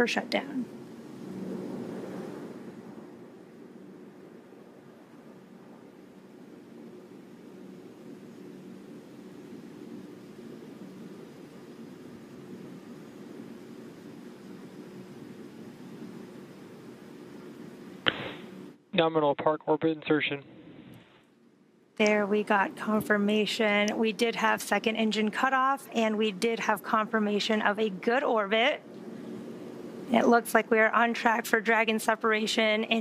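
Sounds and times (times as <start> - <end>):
faint hiss: 0.0 - 19.3, 20.7 - 33.0
low hum: 0.0 - 33.0.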